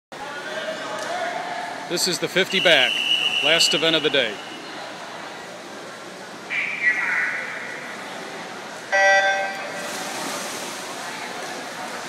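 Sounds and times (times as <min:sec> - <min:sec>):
echoing swimming pool hall noise: 0:00.1 - 0:12.0
faint distant voices: 0:00.2 - 0:12.0
man speaking: 0:01.9 - 0:04.4.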